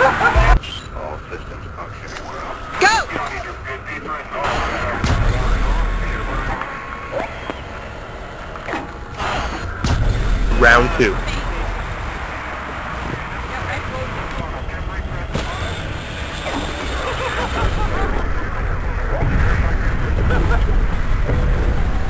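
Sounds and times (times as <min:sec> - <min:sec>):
indistinct voices and chatter: 0:00.0 - 0:22.0
low outdoor rumble: 0:00.0 - 0:22.0.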